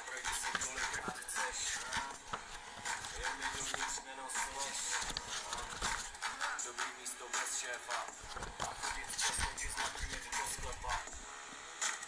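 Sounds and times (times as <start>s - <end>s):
rap beat and backing: 0.0s - 11.3s.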